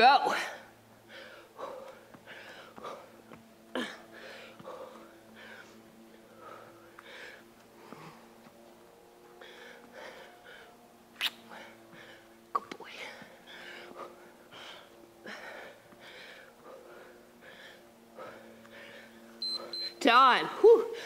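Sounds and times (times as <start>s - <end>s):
faint steady hum: 0.0s - 21.0s
woman breathing hard: 0.3s - 8.6s, 9.2s - 19.9s
short high beep: 19.4s - 20.0s.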